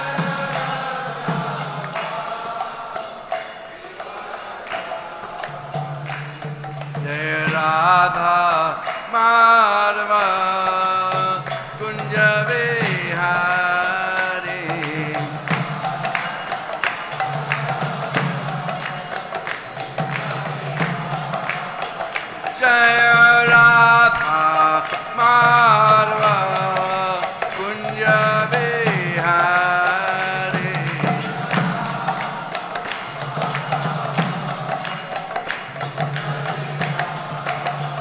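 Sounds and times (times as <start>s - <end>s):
mantra chanted in held notes: 0.0s - 38.0s
sharp percussion strikes: 0.0s - 38.0s.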